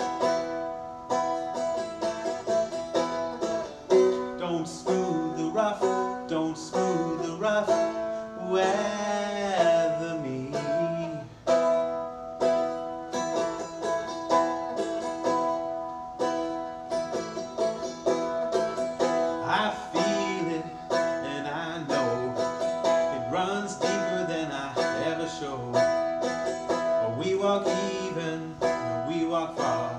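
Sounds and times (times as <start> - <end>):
stick dulcimer strummed: 0.0 - 29.9
person singing: 3.9 - 11.8, 19.0 - 29.9.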